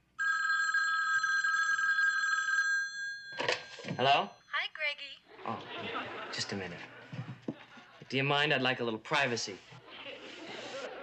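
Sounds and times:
telephone bell ringing: 0.2 - 4.6.

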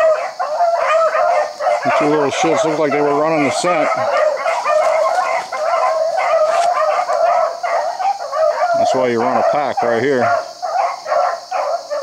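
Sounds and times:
pack of dogs baying: 0.0 - 12.0.

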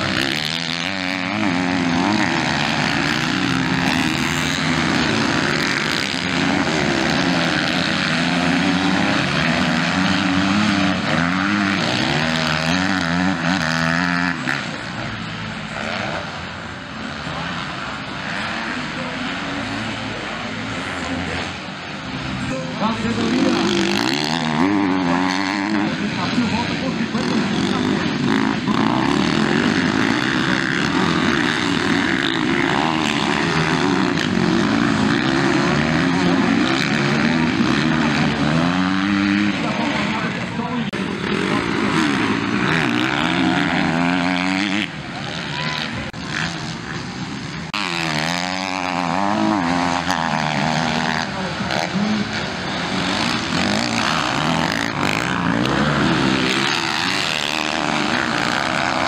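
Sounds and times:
dirt bike engines revving: 0.0 - 59.0.

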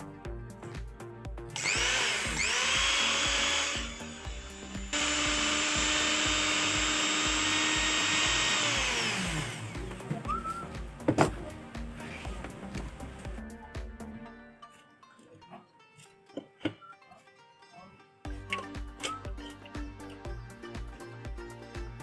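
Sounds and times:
background music with steady beat: 0.0 - 22.0
small electric motor whining: 1.6 - 9.8.

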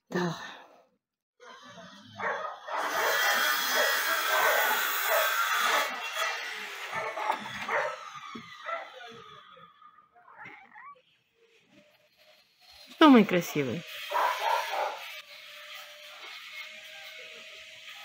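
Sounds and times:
dogs barking: 1.5 - 9.5, 14.1 - 15.2.

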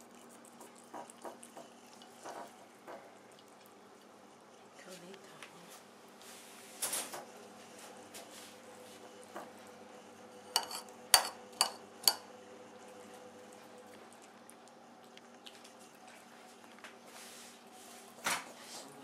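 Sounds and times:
china saucer clinking on table: 10.6 - 12.2.

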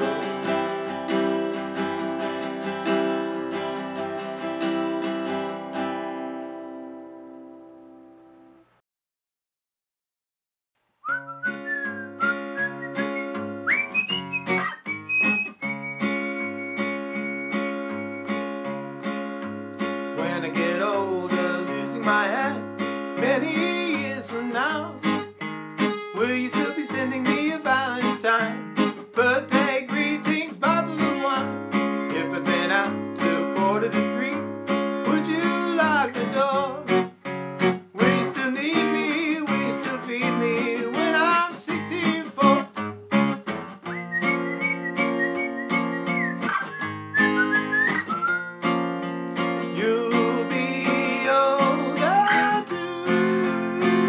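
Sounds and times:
man singing: 0.0 - 0.8, 20.1 - 25.2, 26.0 - 37.0, 37.9 - 42.8, 49.6 - 54.0
acoustic guitar strumming: 0.0 - 8.5, 11.1 - 54.0
held high notes: 11.2 - 18.4.

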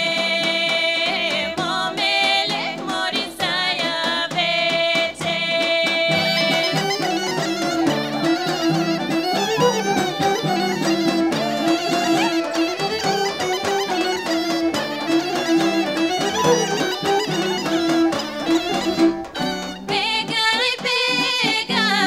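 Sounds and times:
drum beats: 0.0 - 22.0
women singing: 0.0 - 22.0
bagpipe: 5.8 - 21.5.

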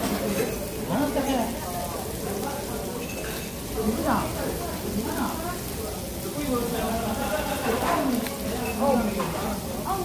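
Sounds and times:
meat sizzling on grill plate: 0.0 - 10.0.

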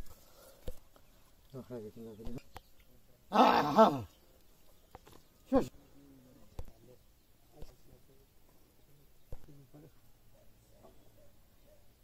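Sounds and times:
animal calling: 3.3 - 4.2.

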